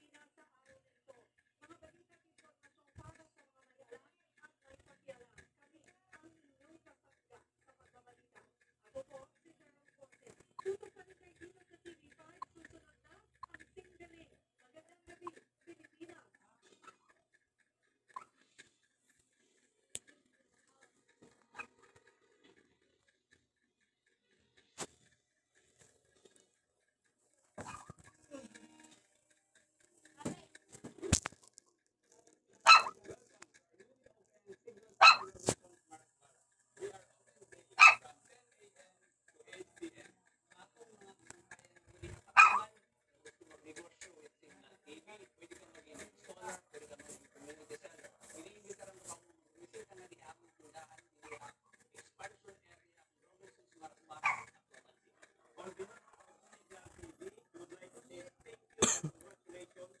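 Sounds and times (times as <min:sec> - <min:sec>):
faint background talk: 0:00.0 - 1:00.0
person coughing: 0:58.8 - 0:59.2.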